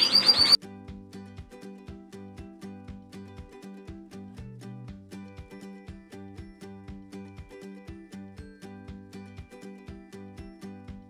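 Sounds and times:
canary chirping: 0:00.0 - 0:00.6
soft background music with beat: 0:00.6 - 0:11.0.

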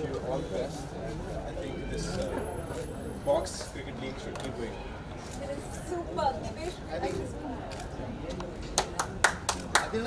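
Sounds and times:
people clapping: 0:08.3 - 0:10.0.

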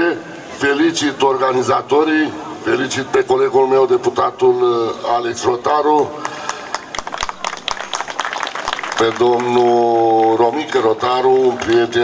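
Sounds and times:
small crowd applauding: 0:05.9 - 0:12.0.

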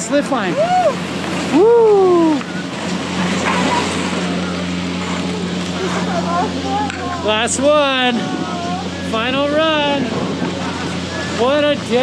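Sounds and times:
chairlift machinery humming: 0:00.0 - 0:12.0.

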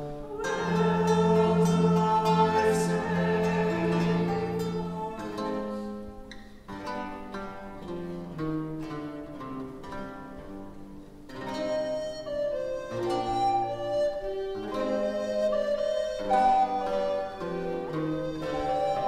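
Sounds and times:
early music consort playing: 0:00.0 - 0:19.0
plucked string notes: 0:00.0 - 0:19.0.

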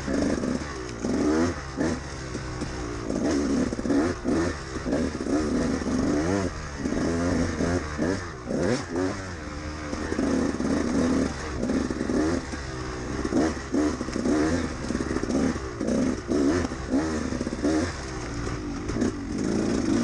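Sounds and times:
motorcycle engine revving: 0:00.0 - 0:20.0.

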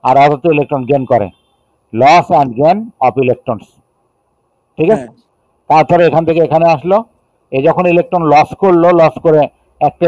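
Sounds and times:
man narrating: 0:00.0 - 0:01.3, 0:02.0 - 0:03.7, 0:04.8 - 0:10.0.

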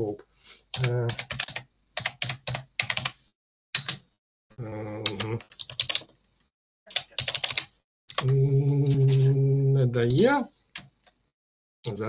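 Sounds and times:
computer keyboard typing: 0:00.7 - 0:03.2, 0:03.8 - 0:04.0, 0:05.0 - 0:06.2, 0:06.9 - 0:08.4.

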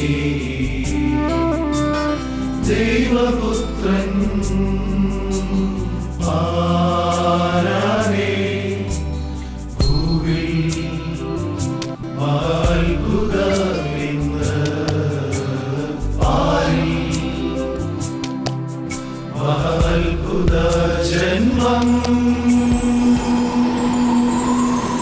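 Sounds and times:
men's choir singing in unison: 0:00.0 - 0:01.3, 0:02.6 - 0:18.5, 0:19.3 - 0:25.0
instrumental accompaniment: 0:00.1 - 0:07.4
steady percussion beat: 0:09.8 - 0:11.9, 0:14.4 - 0:19.0, 0:19.7 - 0:25.0.

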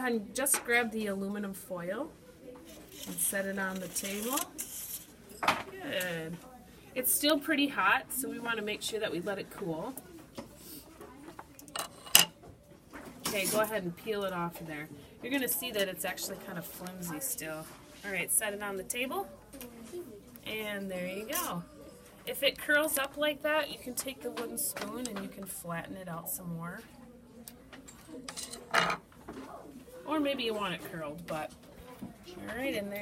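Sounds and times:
aluminum foil crackling: 0:02.7 - 0:05.1
wooden spoon clattering on table: 0:28.3 - 0:29.0.

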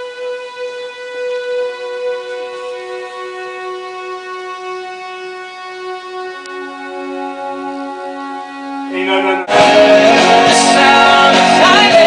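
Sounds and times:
string orchestra playing held notes: 0:00.0 - 0:12.0.

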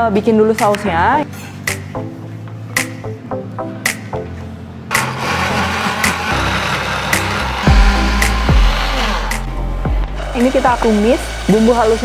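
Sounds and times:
background music with a beat: 0:01.6 - 0:11.5
blender motor running: 0:04.9 - 0:12.0.

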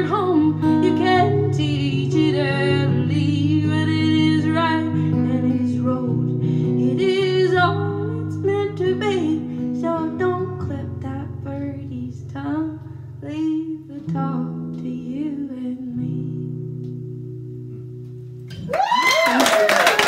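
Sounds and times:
woman singing: 0:00.0 - 0:16.8
acoustic guitar: 0:00.0 - 0:19.1.

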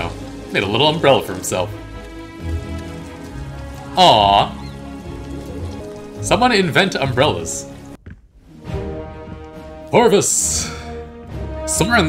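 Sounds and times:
steady rain falling: 0:00.0 - 0:11.1
soft background music: 0:00.0 - 0:12.0.

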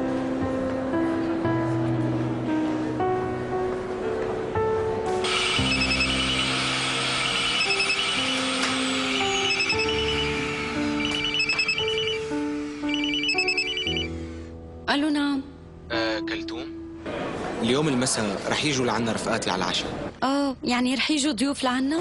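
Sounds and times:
background music: 0:00.0 - 0:18.0
mobile phone ringing: 0:05.3 - 0:06.5, 0:07.2 - 0:14.2.

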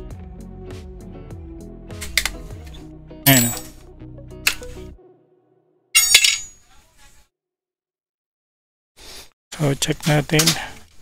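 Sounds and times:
background music: 0:00.0 - 0:06.4.

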